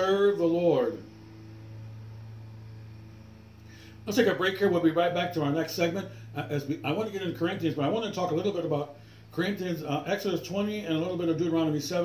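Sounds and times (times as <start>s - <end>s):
faint hiss: 0.0s - 12.0s
low hum: 0.0s - 12.0s.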